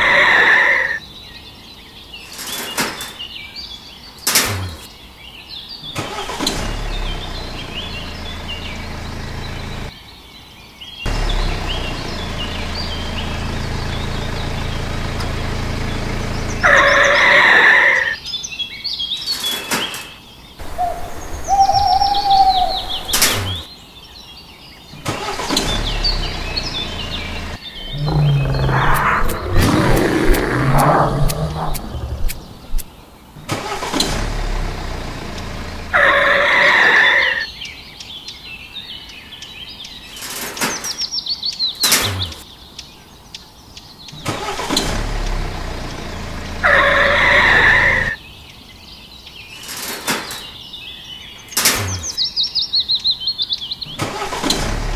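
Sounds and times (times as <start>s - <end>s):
birds chirping: 0.0s - 34.0s, 34.7s - 54.9s
vehicle engine starting and running: 4.3s - 4.9s, 6.0s - 9.9s, 11.1s - 17.5s, 20.6s - 23.7s, 25.0s - 36.7s, 41.8s - 42.4s, 44.2s - 48.2s, 51.6s - 52.2s, 53.9s - 54.9s.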